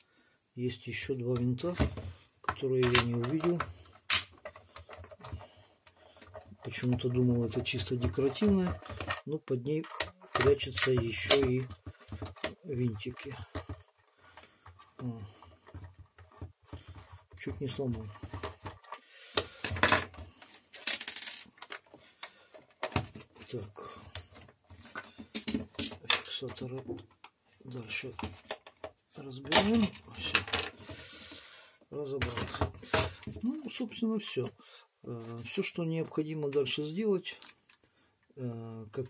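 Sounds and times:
plastic creaking and rubbing: 0.7 - 31.4, 32.0 - 34.6.

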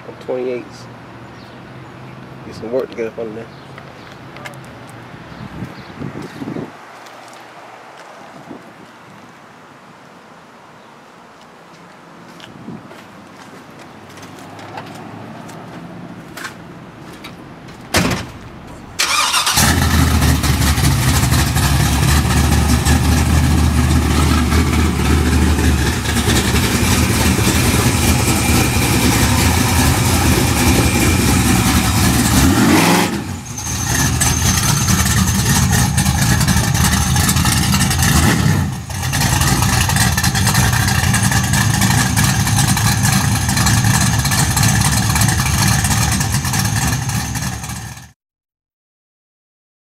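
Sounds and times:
car engine starting and running: 17.9 - 48.1
engine revving: 19.0 - 48.1.

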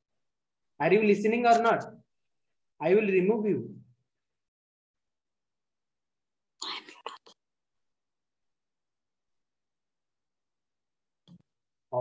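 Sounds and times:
person whispering: 6.6 - 7.4.

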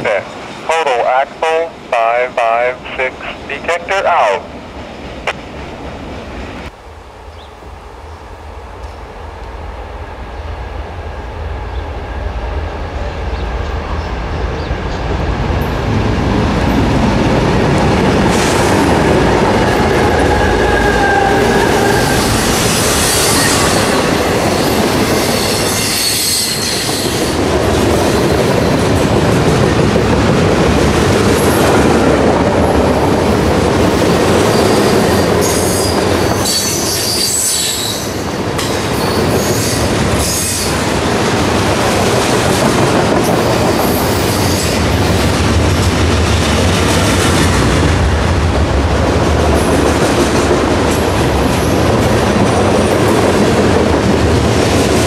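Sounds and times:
freight train passing: 0.0 - 55.0
train cars rumbling and clattering: 0.0 - 55.0.

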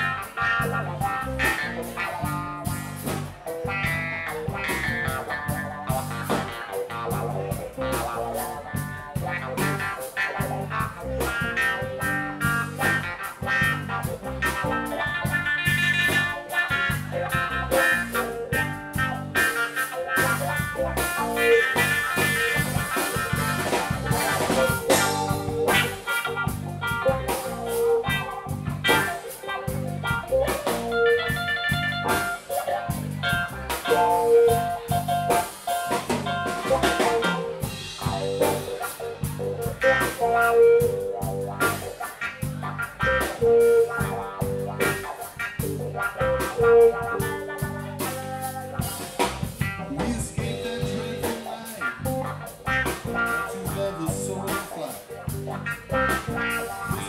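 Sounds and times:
bass guitar: 0.0 - 57.0
drum kit: 0.0 - 57.0
electric guitar lines: 0.0 - 57.0
keyboards: 0.0 - 57.0.

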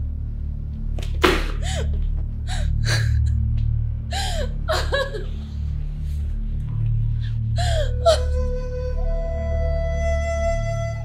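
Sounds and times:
low steady music bed: 0.0 - 11.0
woman gasping and whimpering: 1.4 - 3.4, 4.1 - 5.5, 7.5 - 8.4.

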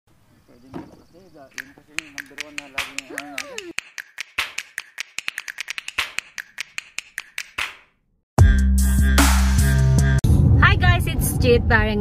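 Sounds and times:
voice sliding in pitch: 3.0 - 3.7.

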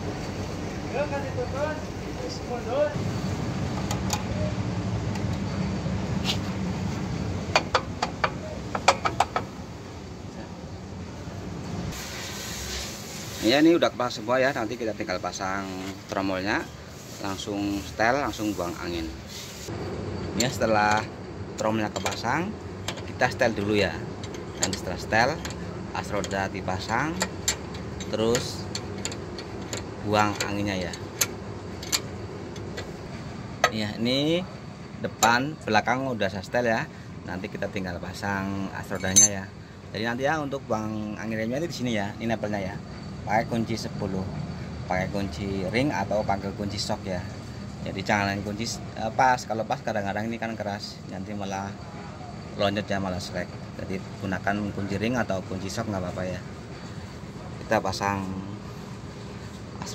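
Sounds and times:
metallic clicks of brake hardware: 3.8 - 4.4, 7.5 - 9.6, 21.8 - 33.0.

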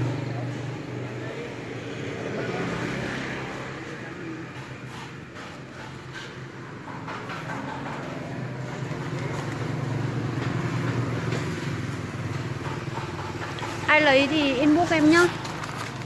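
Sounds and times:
vehicle engine running: 0.0 - 16.0.

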